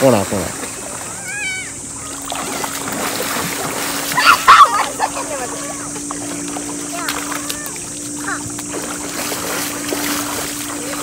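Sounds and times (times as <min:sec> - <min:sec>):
children splashing through water: 0:00.0 - 0:11.0
water washing: 0:00.0 - 0:11.0
children calling: 0:00.6 - 0:11.0.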